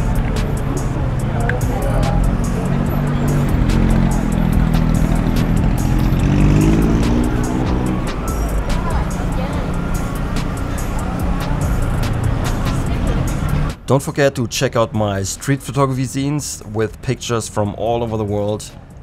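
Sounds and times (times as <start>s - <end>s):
cars idling in traffic: 0.0s - 13.9s
background music: 0.0s - 19.0s.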